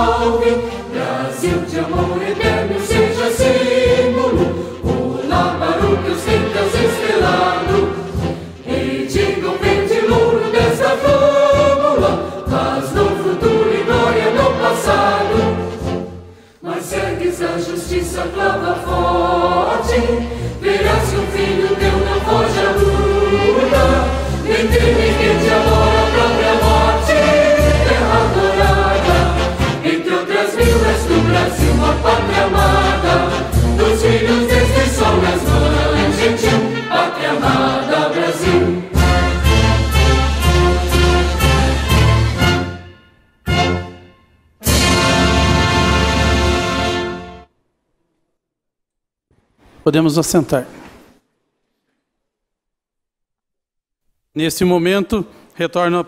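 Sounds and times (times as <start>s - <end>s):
choir singing an anthem: 0.0s - 42.9s, 44.6s - 47.4s
instrumental accompaniment: 0.0s - 47.5s.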